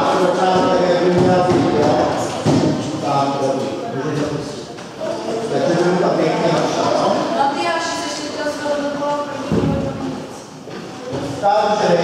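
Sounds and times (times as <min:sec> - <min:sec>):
indistinct voices in a gym hall: 0:00.0 - 0:12.0.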